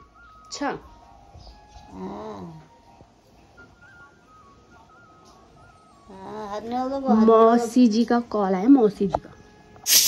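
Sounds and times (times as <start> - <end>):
thin background music melody: 0.0 - 10.0.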